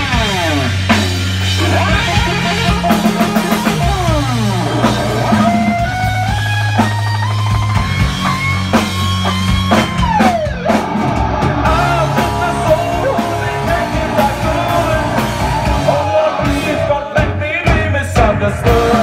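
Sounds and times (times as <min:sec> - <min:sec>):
lead guitar line: 0:00.0 - 0:17.2
live rock band playing: 0:00.0 - 0:19.0.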